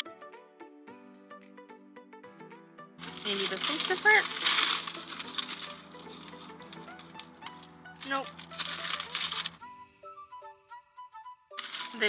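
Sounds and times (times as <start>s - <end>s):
soft background music: 0.0s - 12.0s
paper wrapper rustling: 3.0s - 9.6s, 11.6s - 12.0s.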